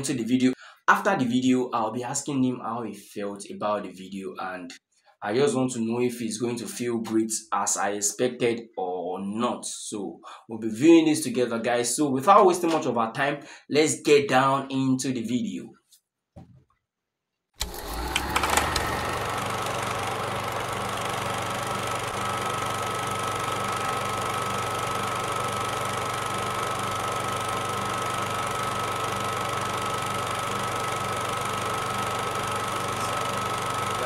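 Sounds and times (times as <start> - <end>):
machine running with low hum: 17.6 - 34.0.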